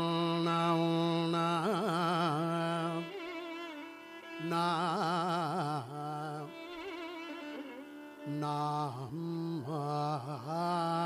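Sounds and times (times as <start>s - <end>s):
man singing on syllables: 0.0s - 3.5s, 4.4s - 7.0s, 8.2s - 11.0s.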